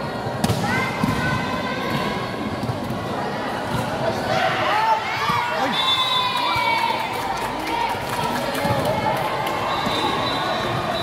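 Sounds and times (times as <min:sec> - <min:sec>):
spectators shouting and chattering: 0:00.0 - 0:11.0.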